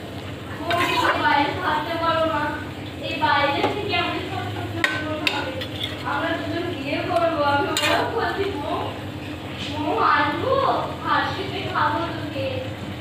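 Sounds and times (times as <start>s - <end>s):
spatula stirring curry: 4.8s - 6.5s, 7.6s - 8.2s
spatula clinking against pan: 7.8s - 8.1s.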